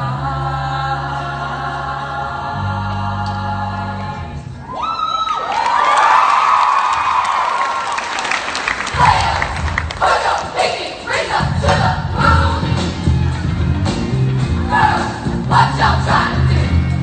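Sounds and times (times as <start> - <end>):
choir singing sustained chords: 0.0 - 4.6
low held bass notes: 0.0 - 4.6, 11.6 - 17.0
whooping cheers: 4.7 - 8.3
clapping: 5.5 - 10.0.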